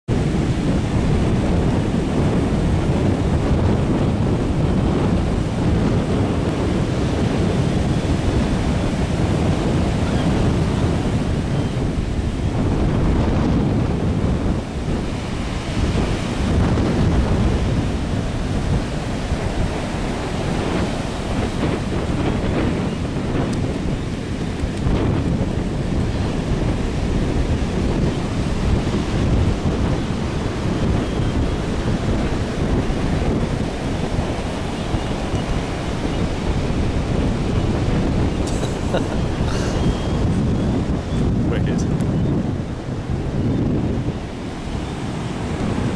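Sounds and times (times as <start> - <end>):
ocean surf breaking on beach: 0.1 - 45.9
wind buffeting microphone: 0.1 - 45.9.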